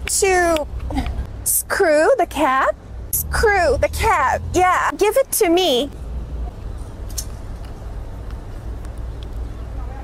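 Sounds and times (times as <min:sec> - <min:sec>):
low traffic rumble: 0:00.0 - 0:10.0.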